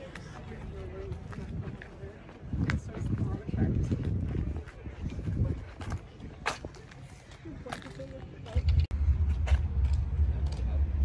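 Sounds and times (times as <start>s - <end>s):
wind buffeting microphone: 0.4s - 6.9s.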